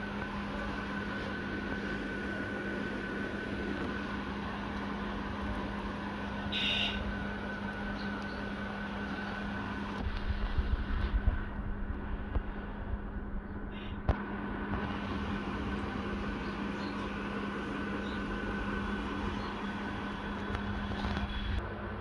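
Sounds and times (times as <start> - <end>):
faint held whine: 0.0 - 22.0
steady background hum: 0.0 - 22.0.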